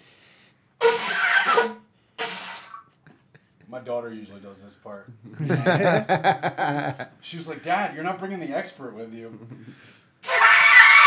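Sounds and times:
breathy horn blasts: 0.8s - 2.8s, 10.2s - 11.0s.

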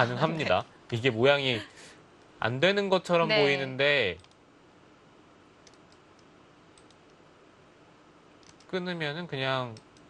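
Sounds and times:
computer mouse clicks: 4.2s - 4.4s, 5.6s - 7.2s, 8.4s - 8.7s, 9.7s - 10.0s.

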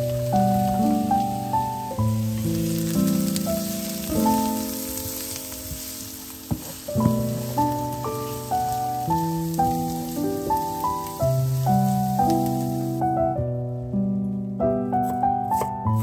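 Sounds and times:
vegetables sizzling in a pan: 0.0s - 13.2s
background music: 0.0s - 16.0s
wooden spatula stirring: 0.2s - 12.9s.

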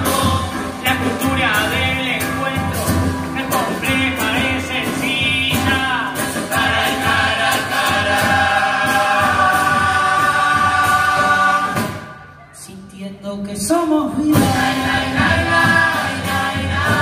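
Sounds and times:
bass drum: 0.0s - 12.2s, 14.1s - 17.0s
chorus singing in harmony: 0.0s - 12.4s, 14.3s - 17.0s
snare drum: 2.7s - 12.3s, 14.3s - 17.0s.

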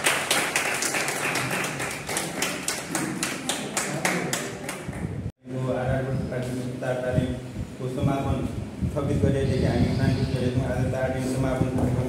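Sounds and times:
group clapping in unison: 0.0s - 5.2s.

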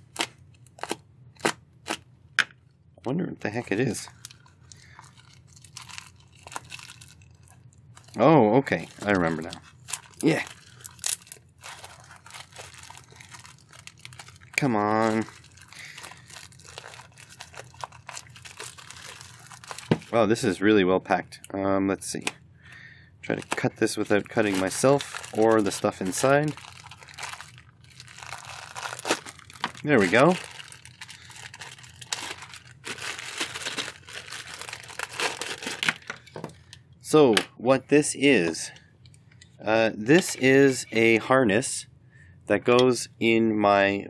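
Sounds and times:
plastic packaging crinkling: 0.0s - 2.0s, 3.6s - 20.4s, 23.2s - 36.7s.

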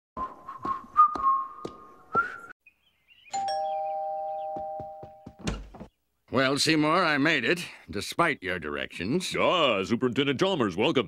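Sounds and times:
cartoon footsteps on steps: 0.2s - 2.4s, 4.4s - 6.0s
two-note doorbell chime: 3.4s - 5.3s.

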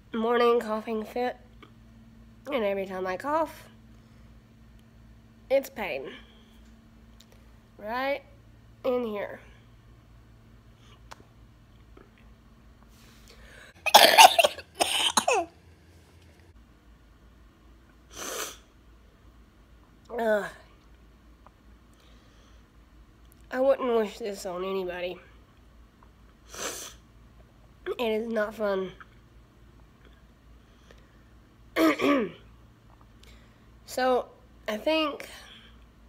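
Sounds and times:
woman coughing: 13.8s - 15.5s, 31.8s - 32.5s
woman clearing her throat: 13.9s - 15.5s, 31.8s - 32.4s.

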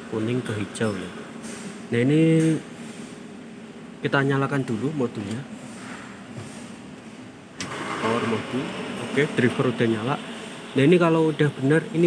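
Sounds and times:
electronic unit whirring: 0.0s - 12.0s.

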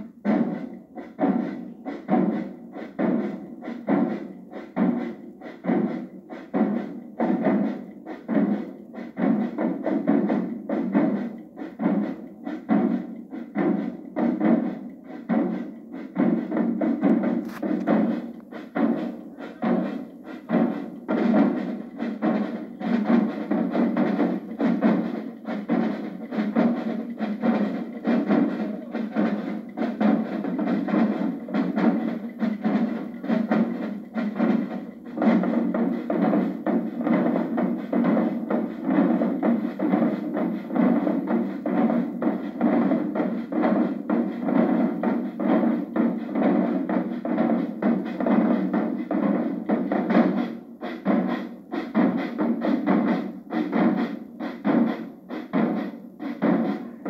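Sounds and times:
marching tenor drums: 0.0s - 57.0s.

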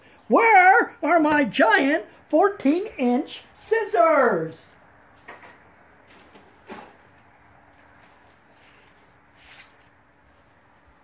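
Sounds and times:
handling noises: 5.1s - 11.0s.

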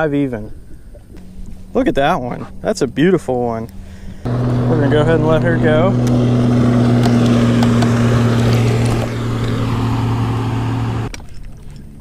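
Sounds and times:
boat motor humming: 3.7s - 11.2s.

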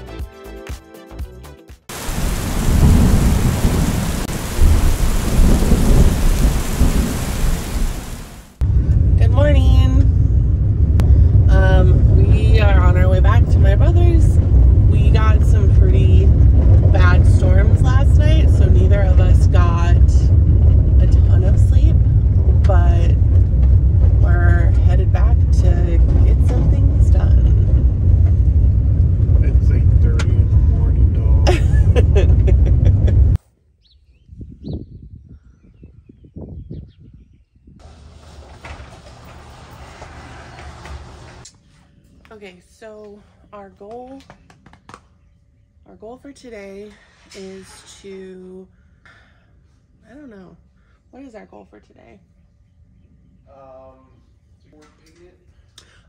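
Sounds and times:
van road and engine rumble: 8.5s - 33.4s, 37.8s - 41.5s.

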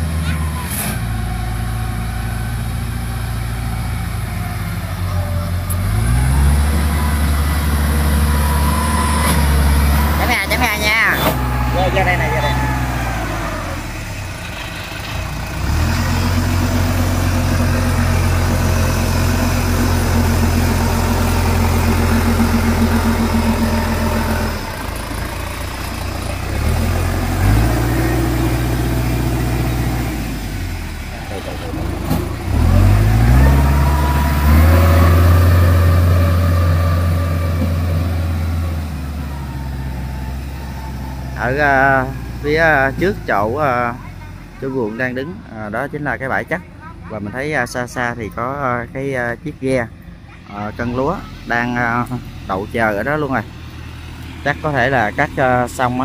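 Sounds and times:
small tracked vehicle engine: 0.0s - 56.0s.

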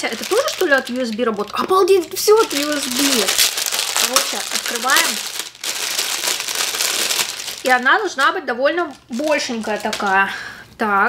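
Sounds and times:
plastic bag crinkling: 0.0s - 10.5s.

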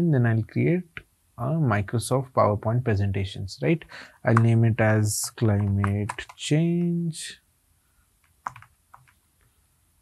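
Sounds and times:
typing on computer keyboard: 5.3s - 6.4s, 8.2s - 9.2s.

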